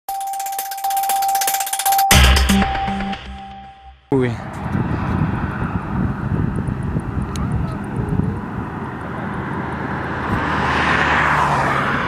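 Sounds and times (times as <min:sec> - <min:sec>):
steady held electronic tone: 0:00.1 - 0:04.1.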